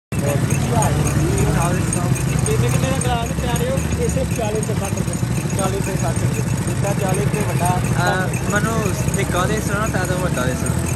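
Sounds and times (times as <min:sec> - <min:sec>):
people talking: 0:00.2 - 0:10.9.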